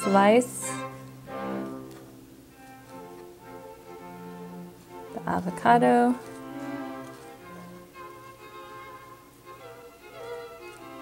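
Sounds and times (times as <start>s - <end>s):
bowed strings music: 0.0s - 11.0s.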